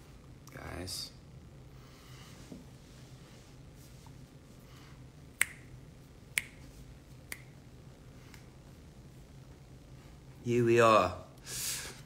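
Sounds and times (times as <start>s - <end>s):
finger snaps: 5.4s - 7.6s, 8.3s - 8.5s.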